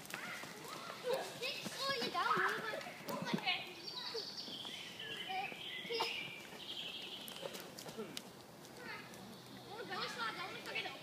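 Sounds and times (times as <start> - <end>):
footsteps on dirt: 0.0 - 9.2.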